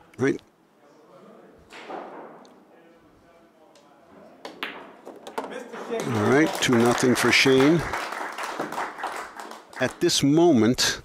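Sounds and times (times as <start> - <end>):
pool cue striking ball: 4.4 - 5.9
billiard balls clicking: 4.4 - 6.1
crowd clapping: 5.8 - 10.1.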